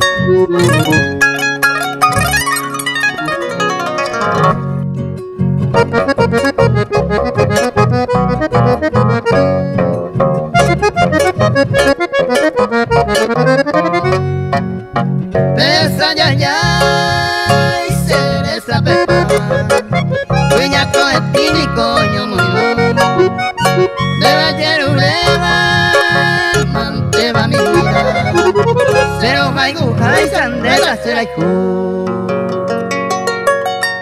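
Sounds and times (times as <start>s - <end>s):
accordion chords: 0.0s - 33.0s
acoustic guitars: 0.0s - 34.0s
plucked bass: 0.0s - 34.0s.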